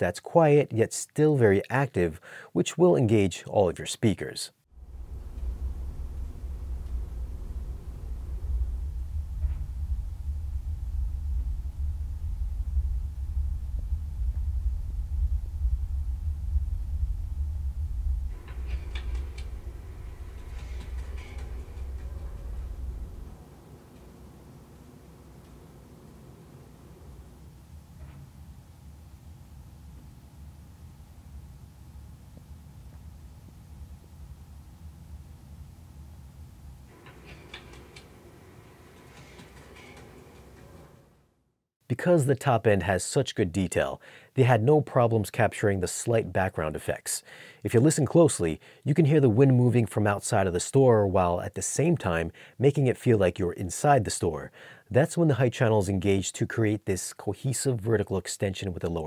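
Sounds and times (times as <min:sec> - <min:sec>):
deep bass rumble: 0:04.7 - 0:36.9
atmospheric film soundtrack: 0:04.8 - 0:13.9, 0:18.0 - 0:27.3.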